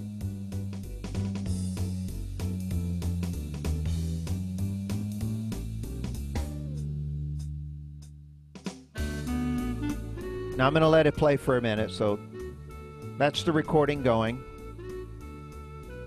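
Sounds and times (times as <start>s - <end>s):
built-in drum rhythm: 0.0s - 11.3s
home organ playing a song: 9.0s - 16.0s.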